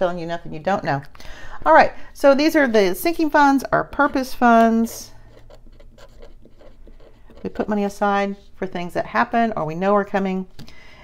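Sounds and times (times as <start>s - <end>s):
pen scratching on paper: 4.0s - 8.0s.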